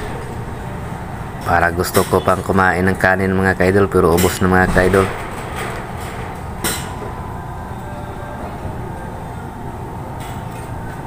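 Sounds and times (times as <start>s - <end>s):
faint even hum: 0.0s - 11.0s
low rumbling noise: 0.0s - 11.0s.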